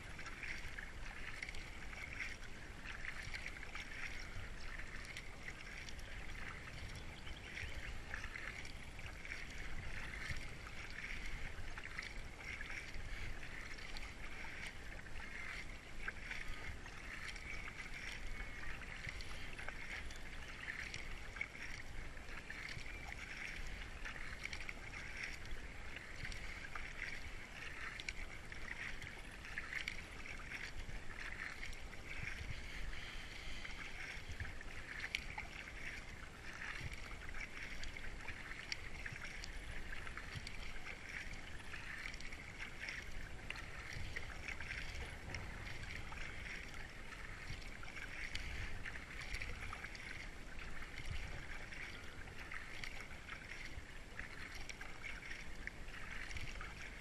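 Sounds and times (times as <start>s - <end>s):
kayak paddle splashing water: 0.0s - 57.0s.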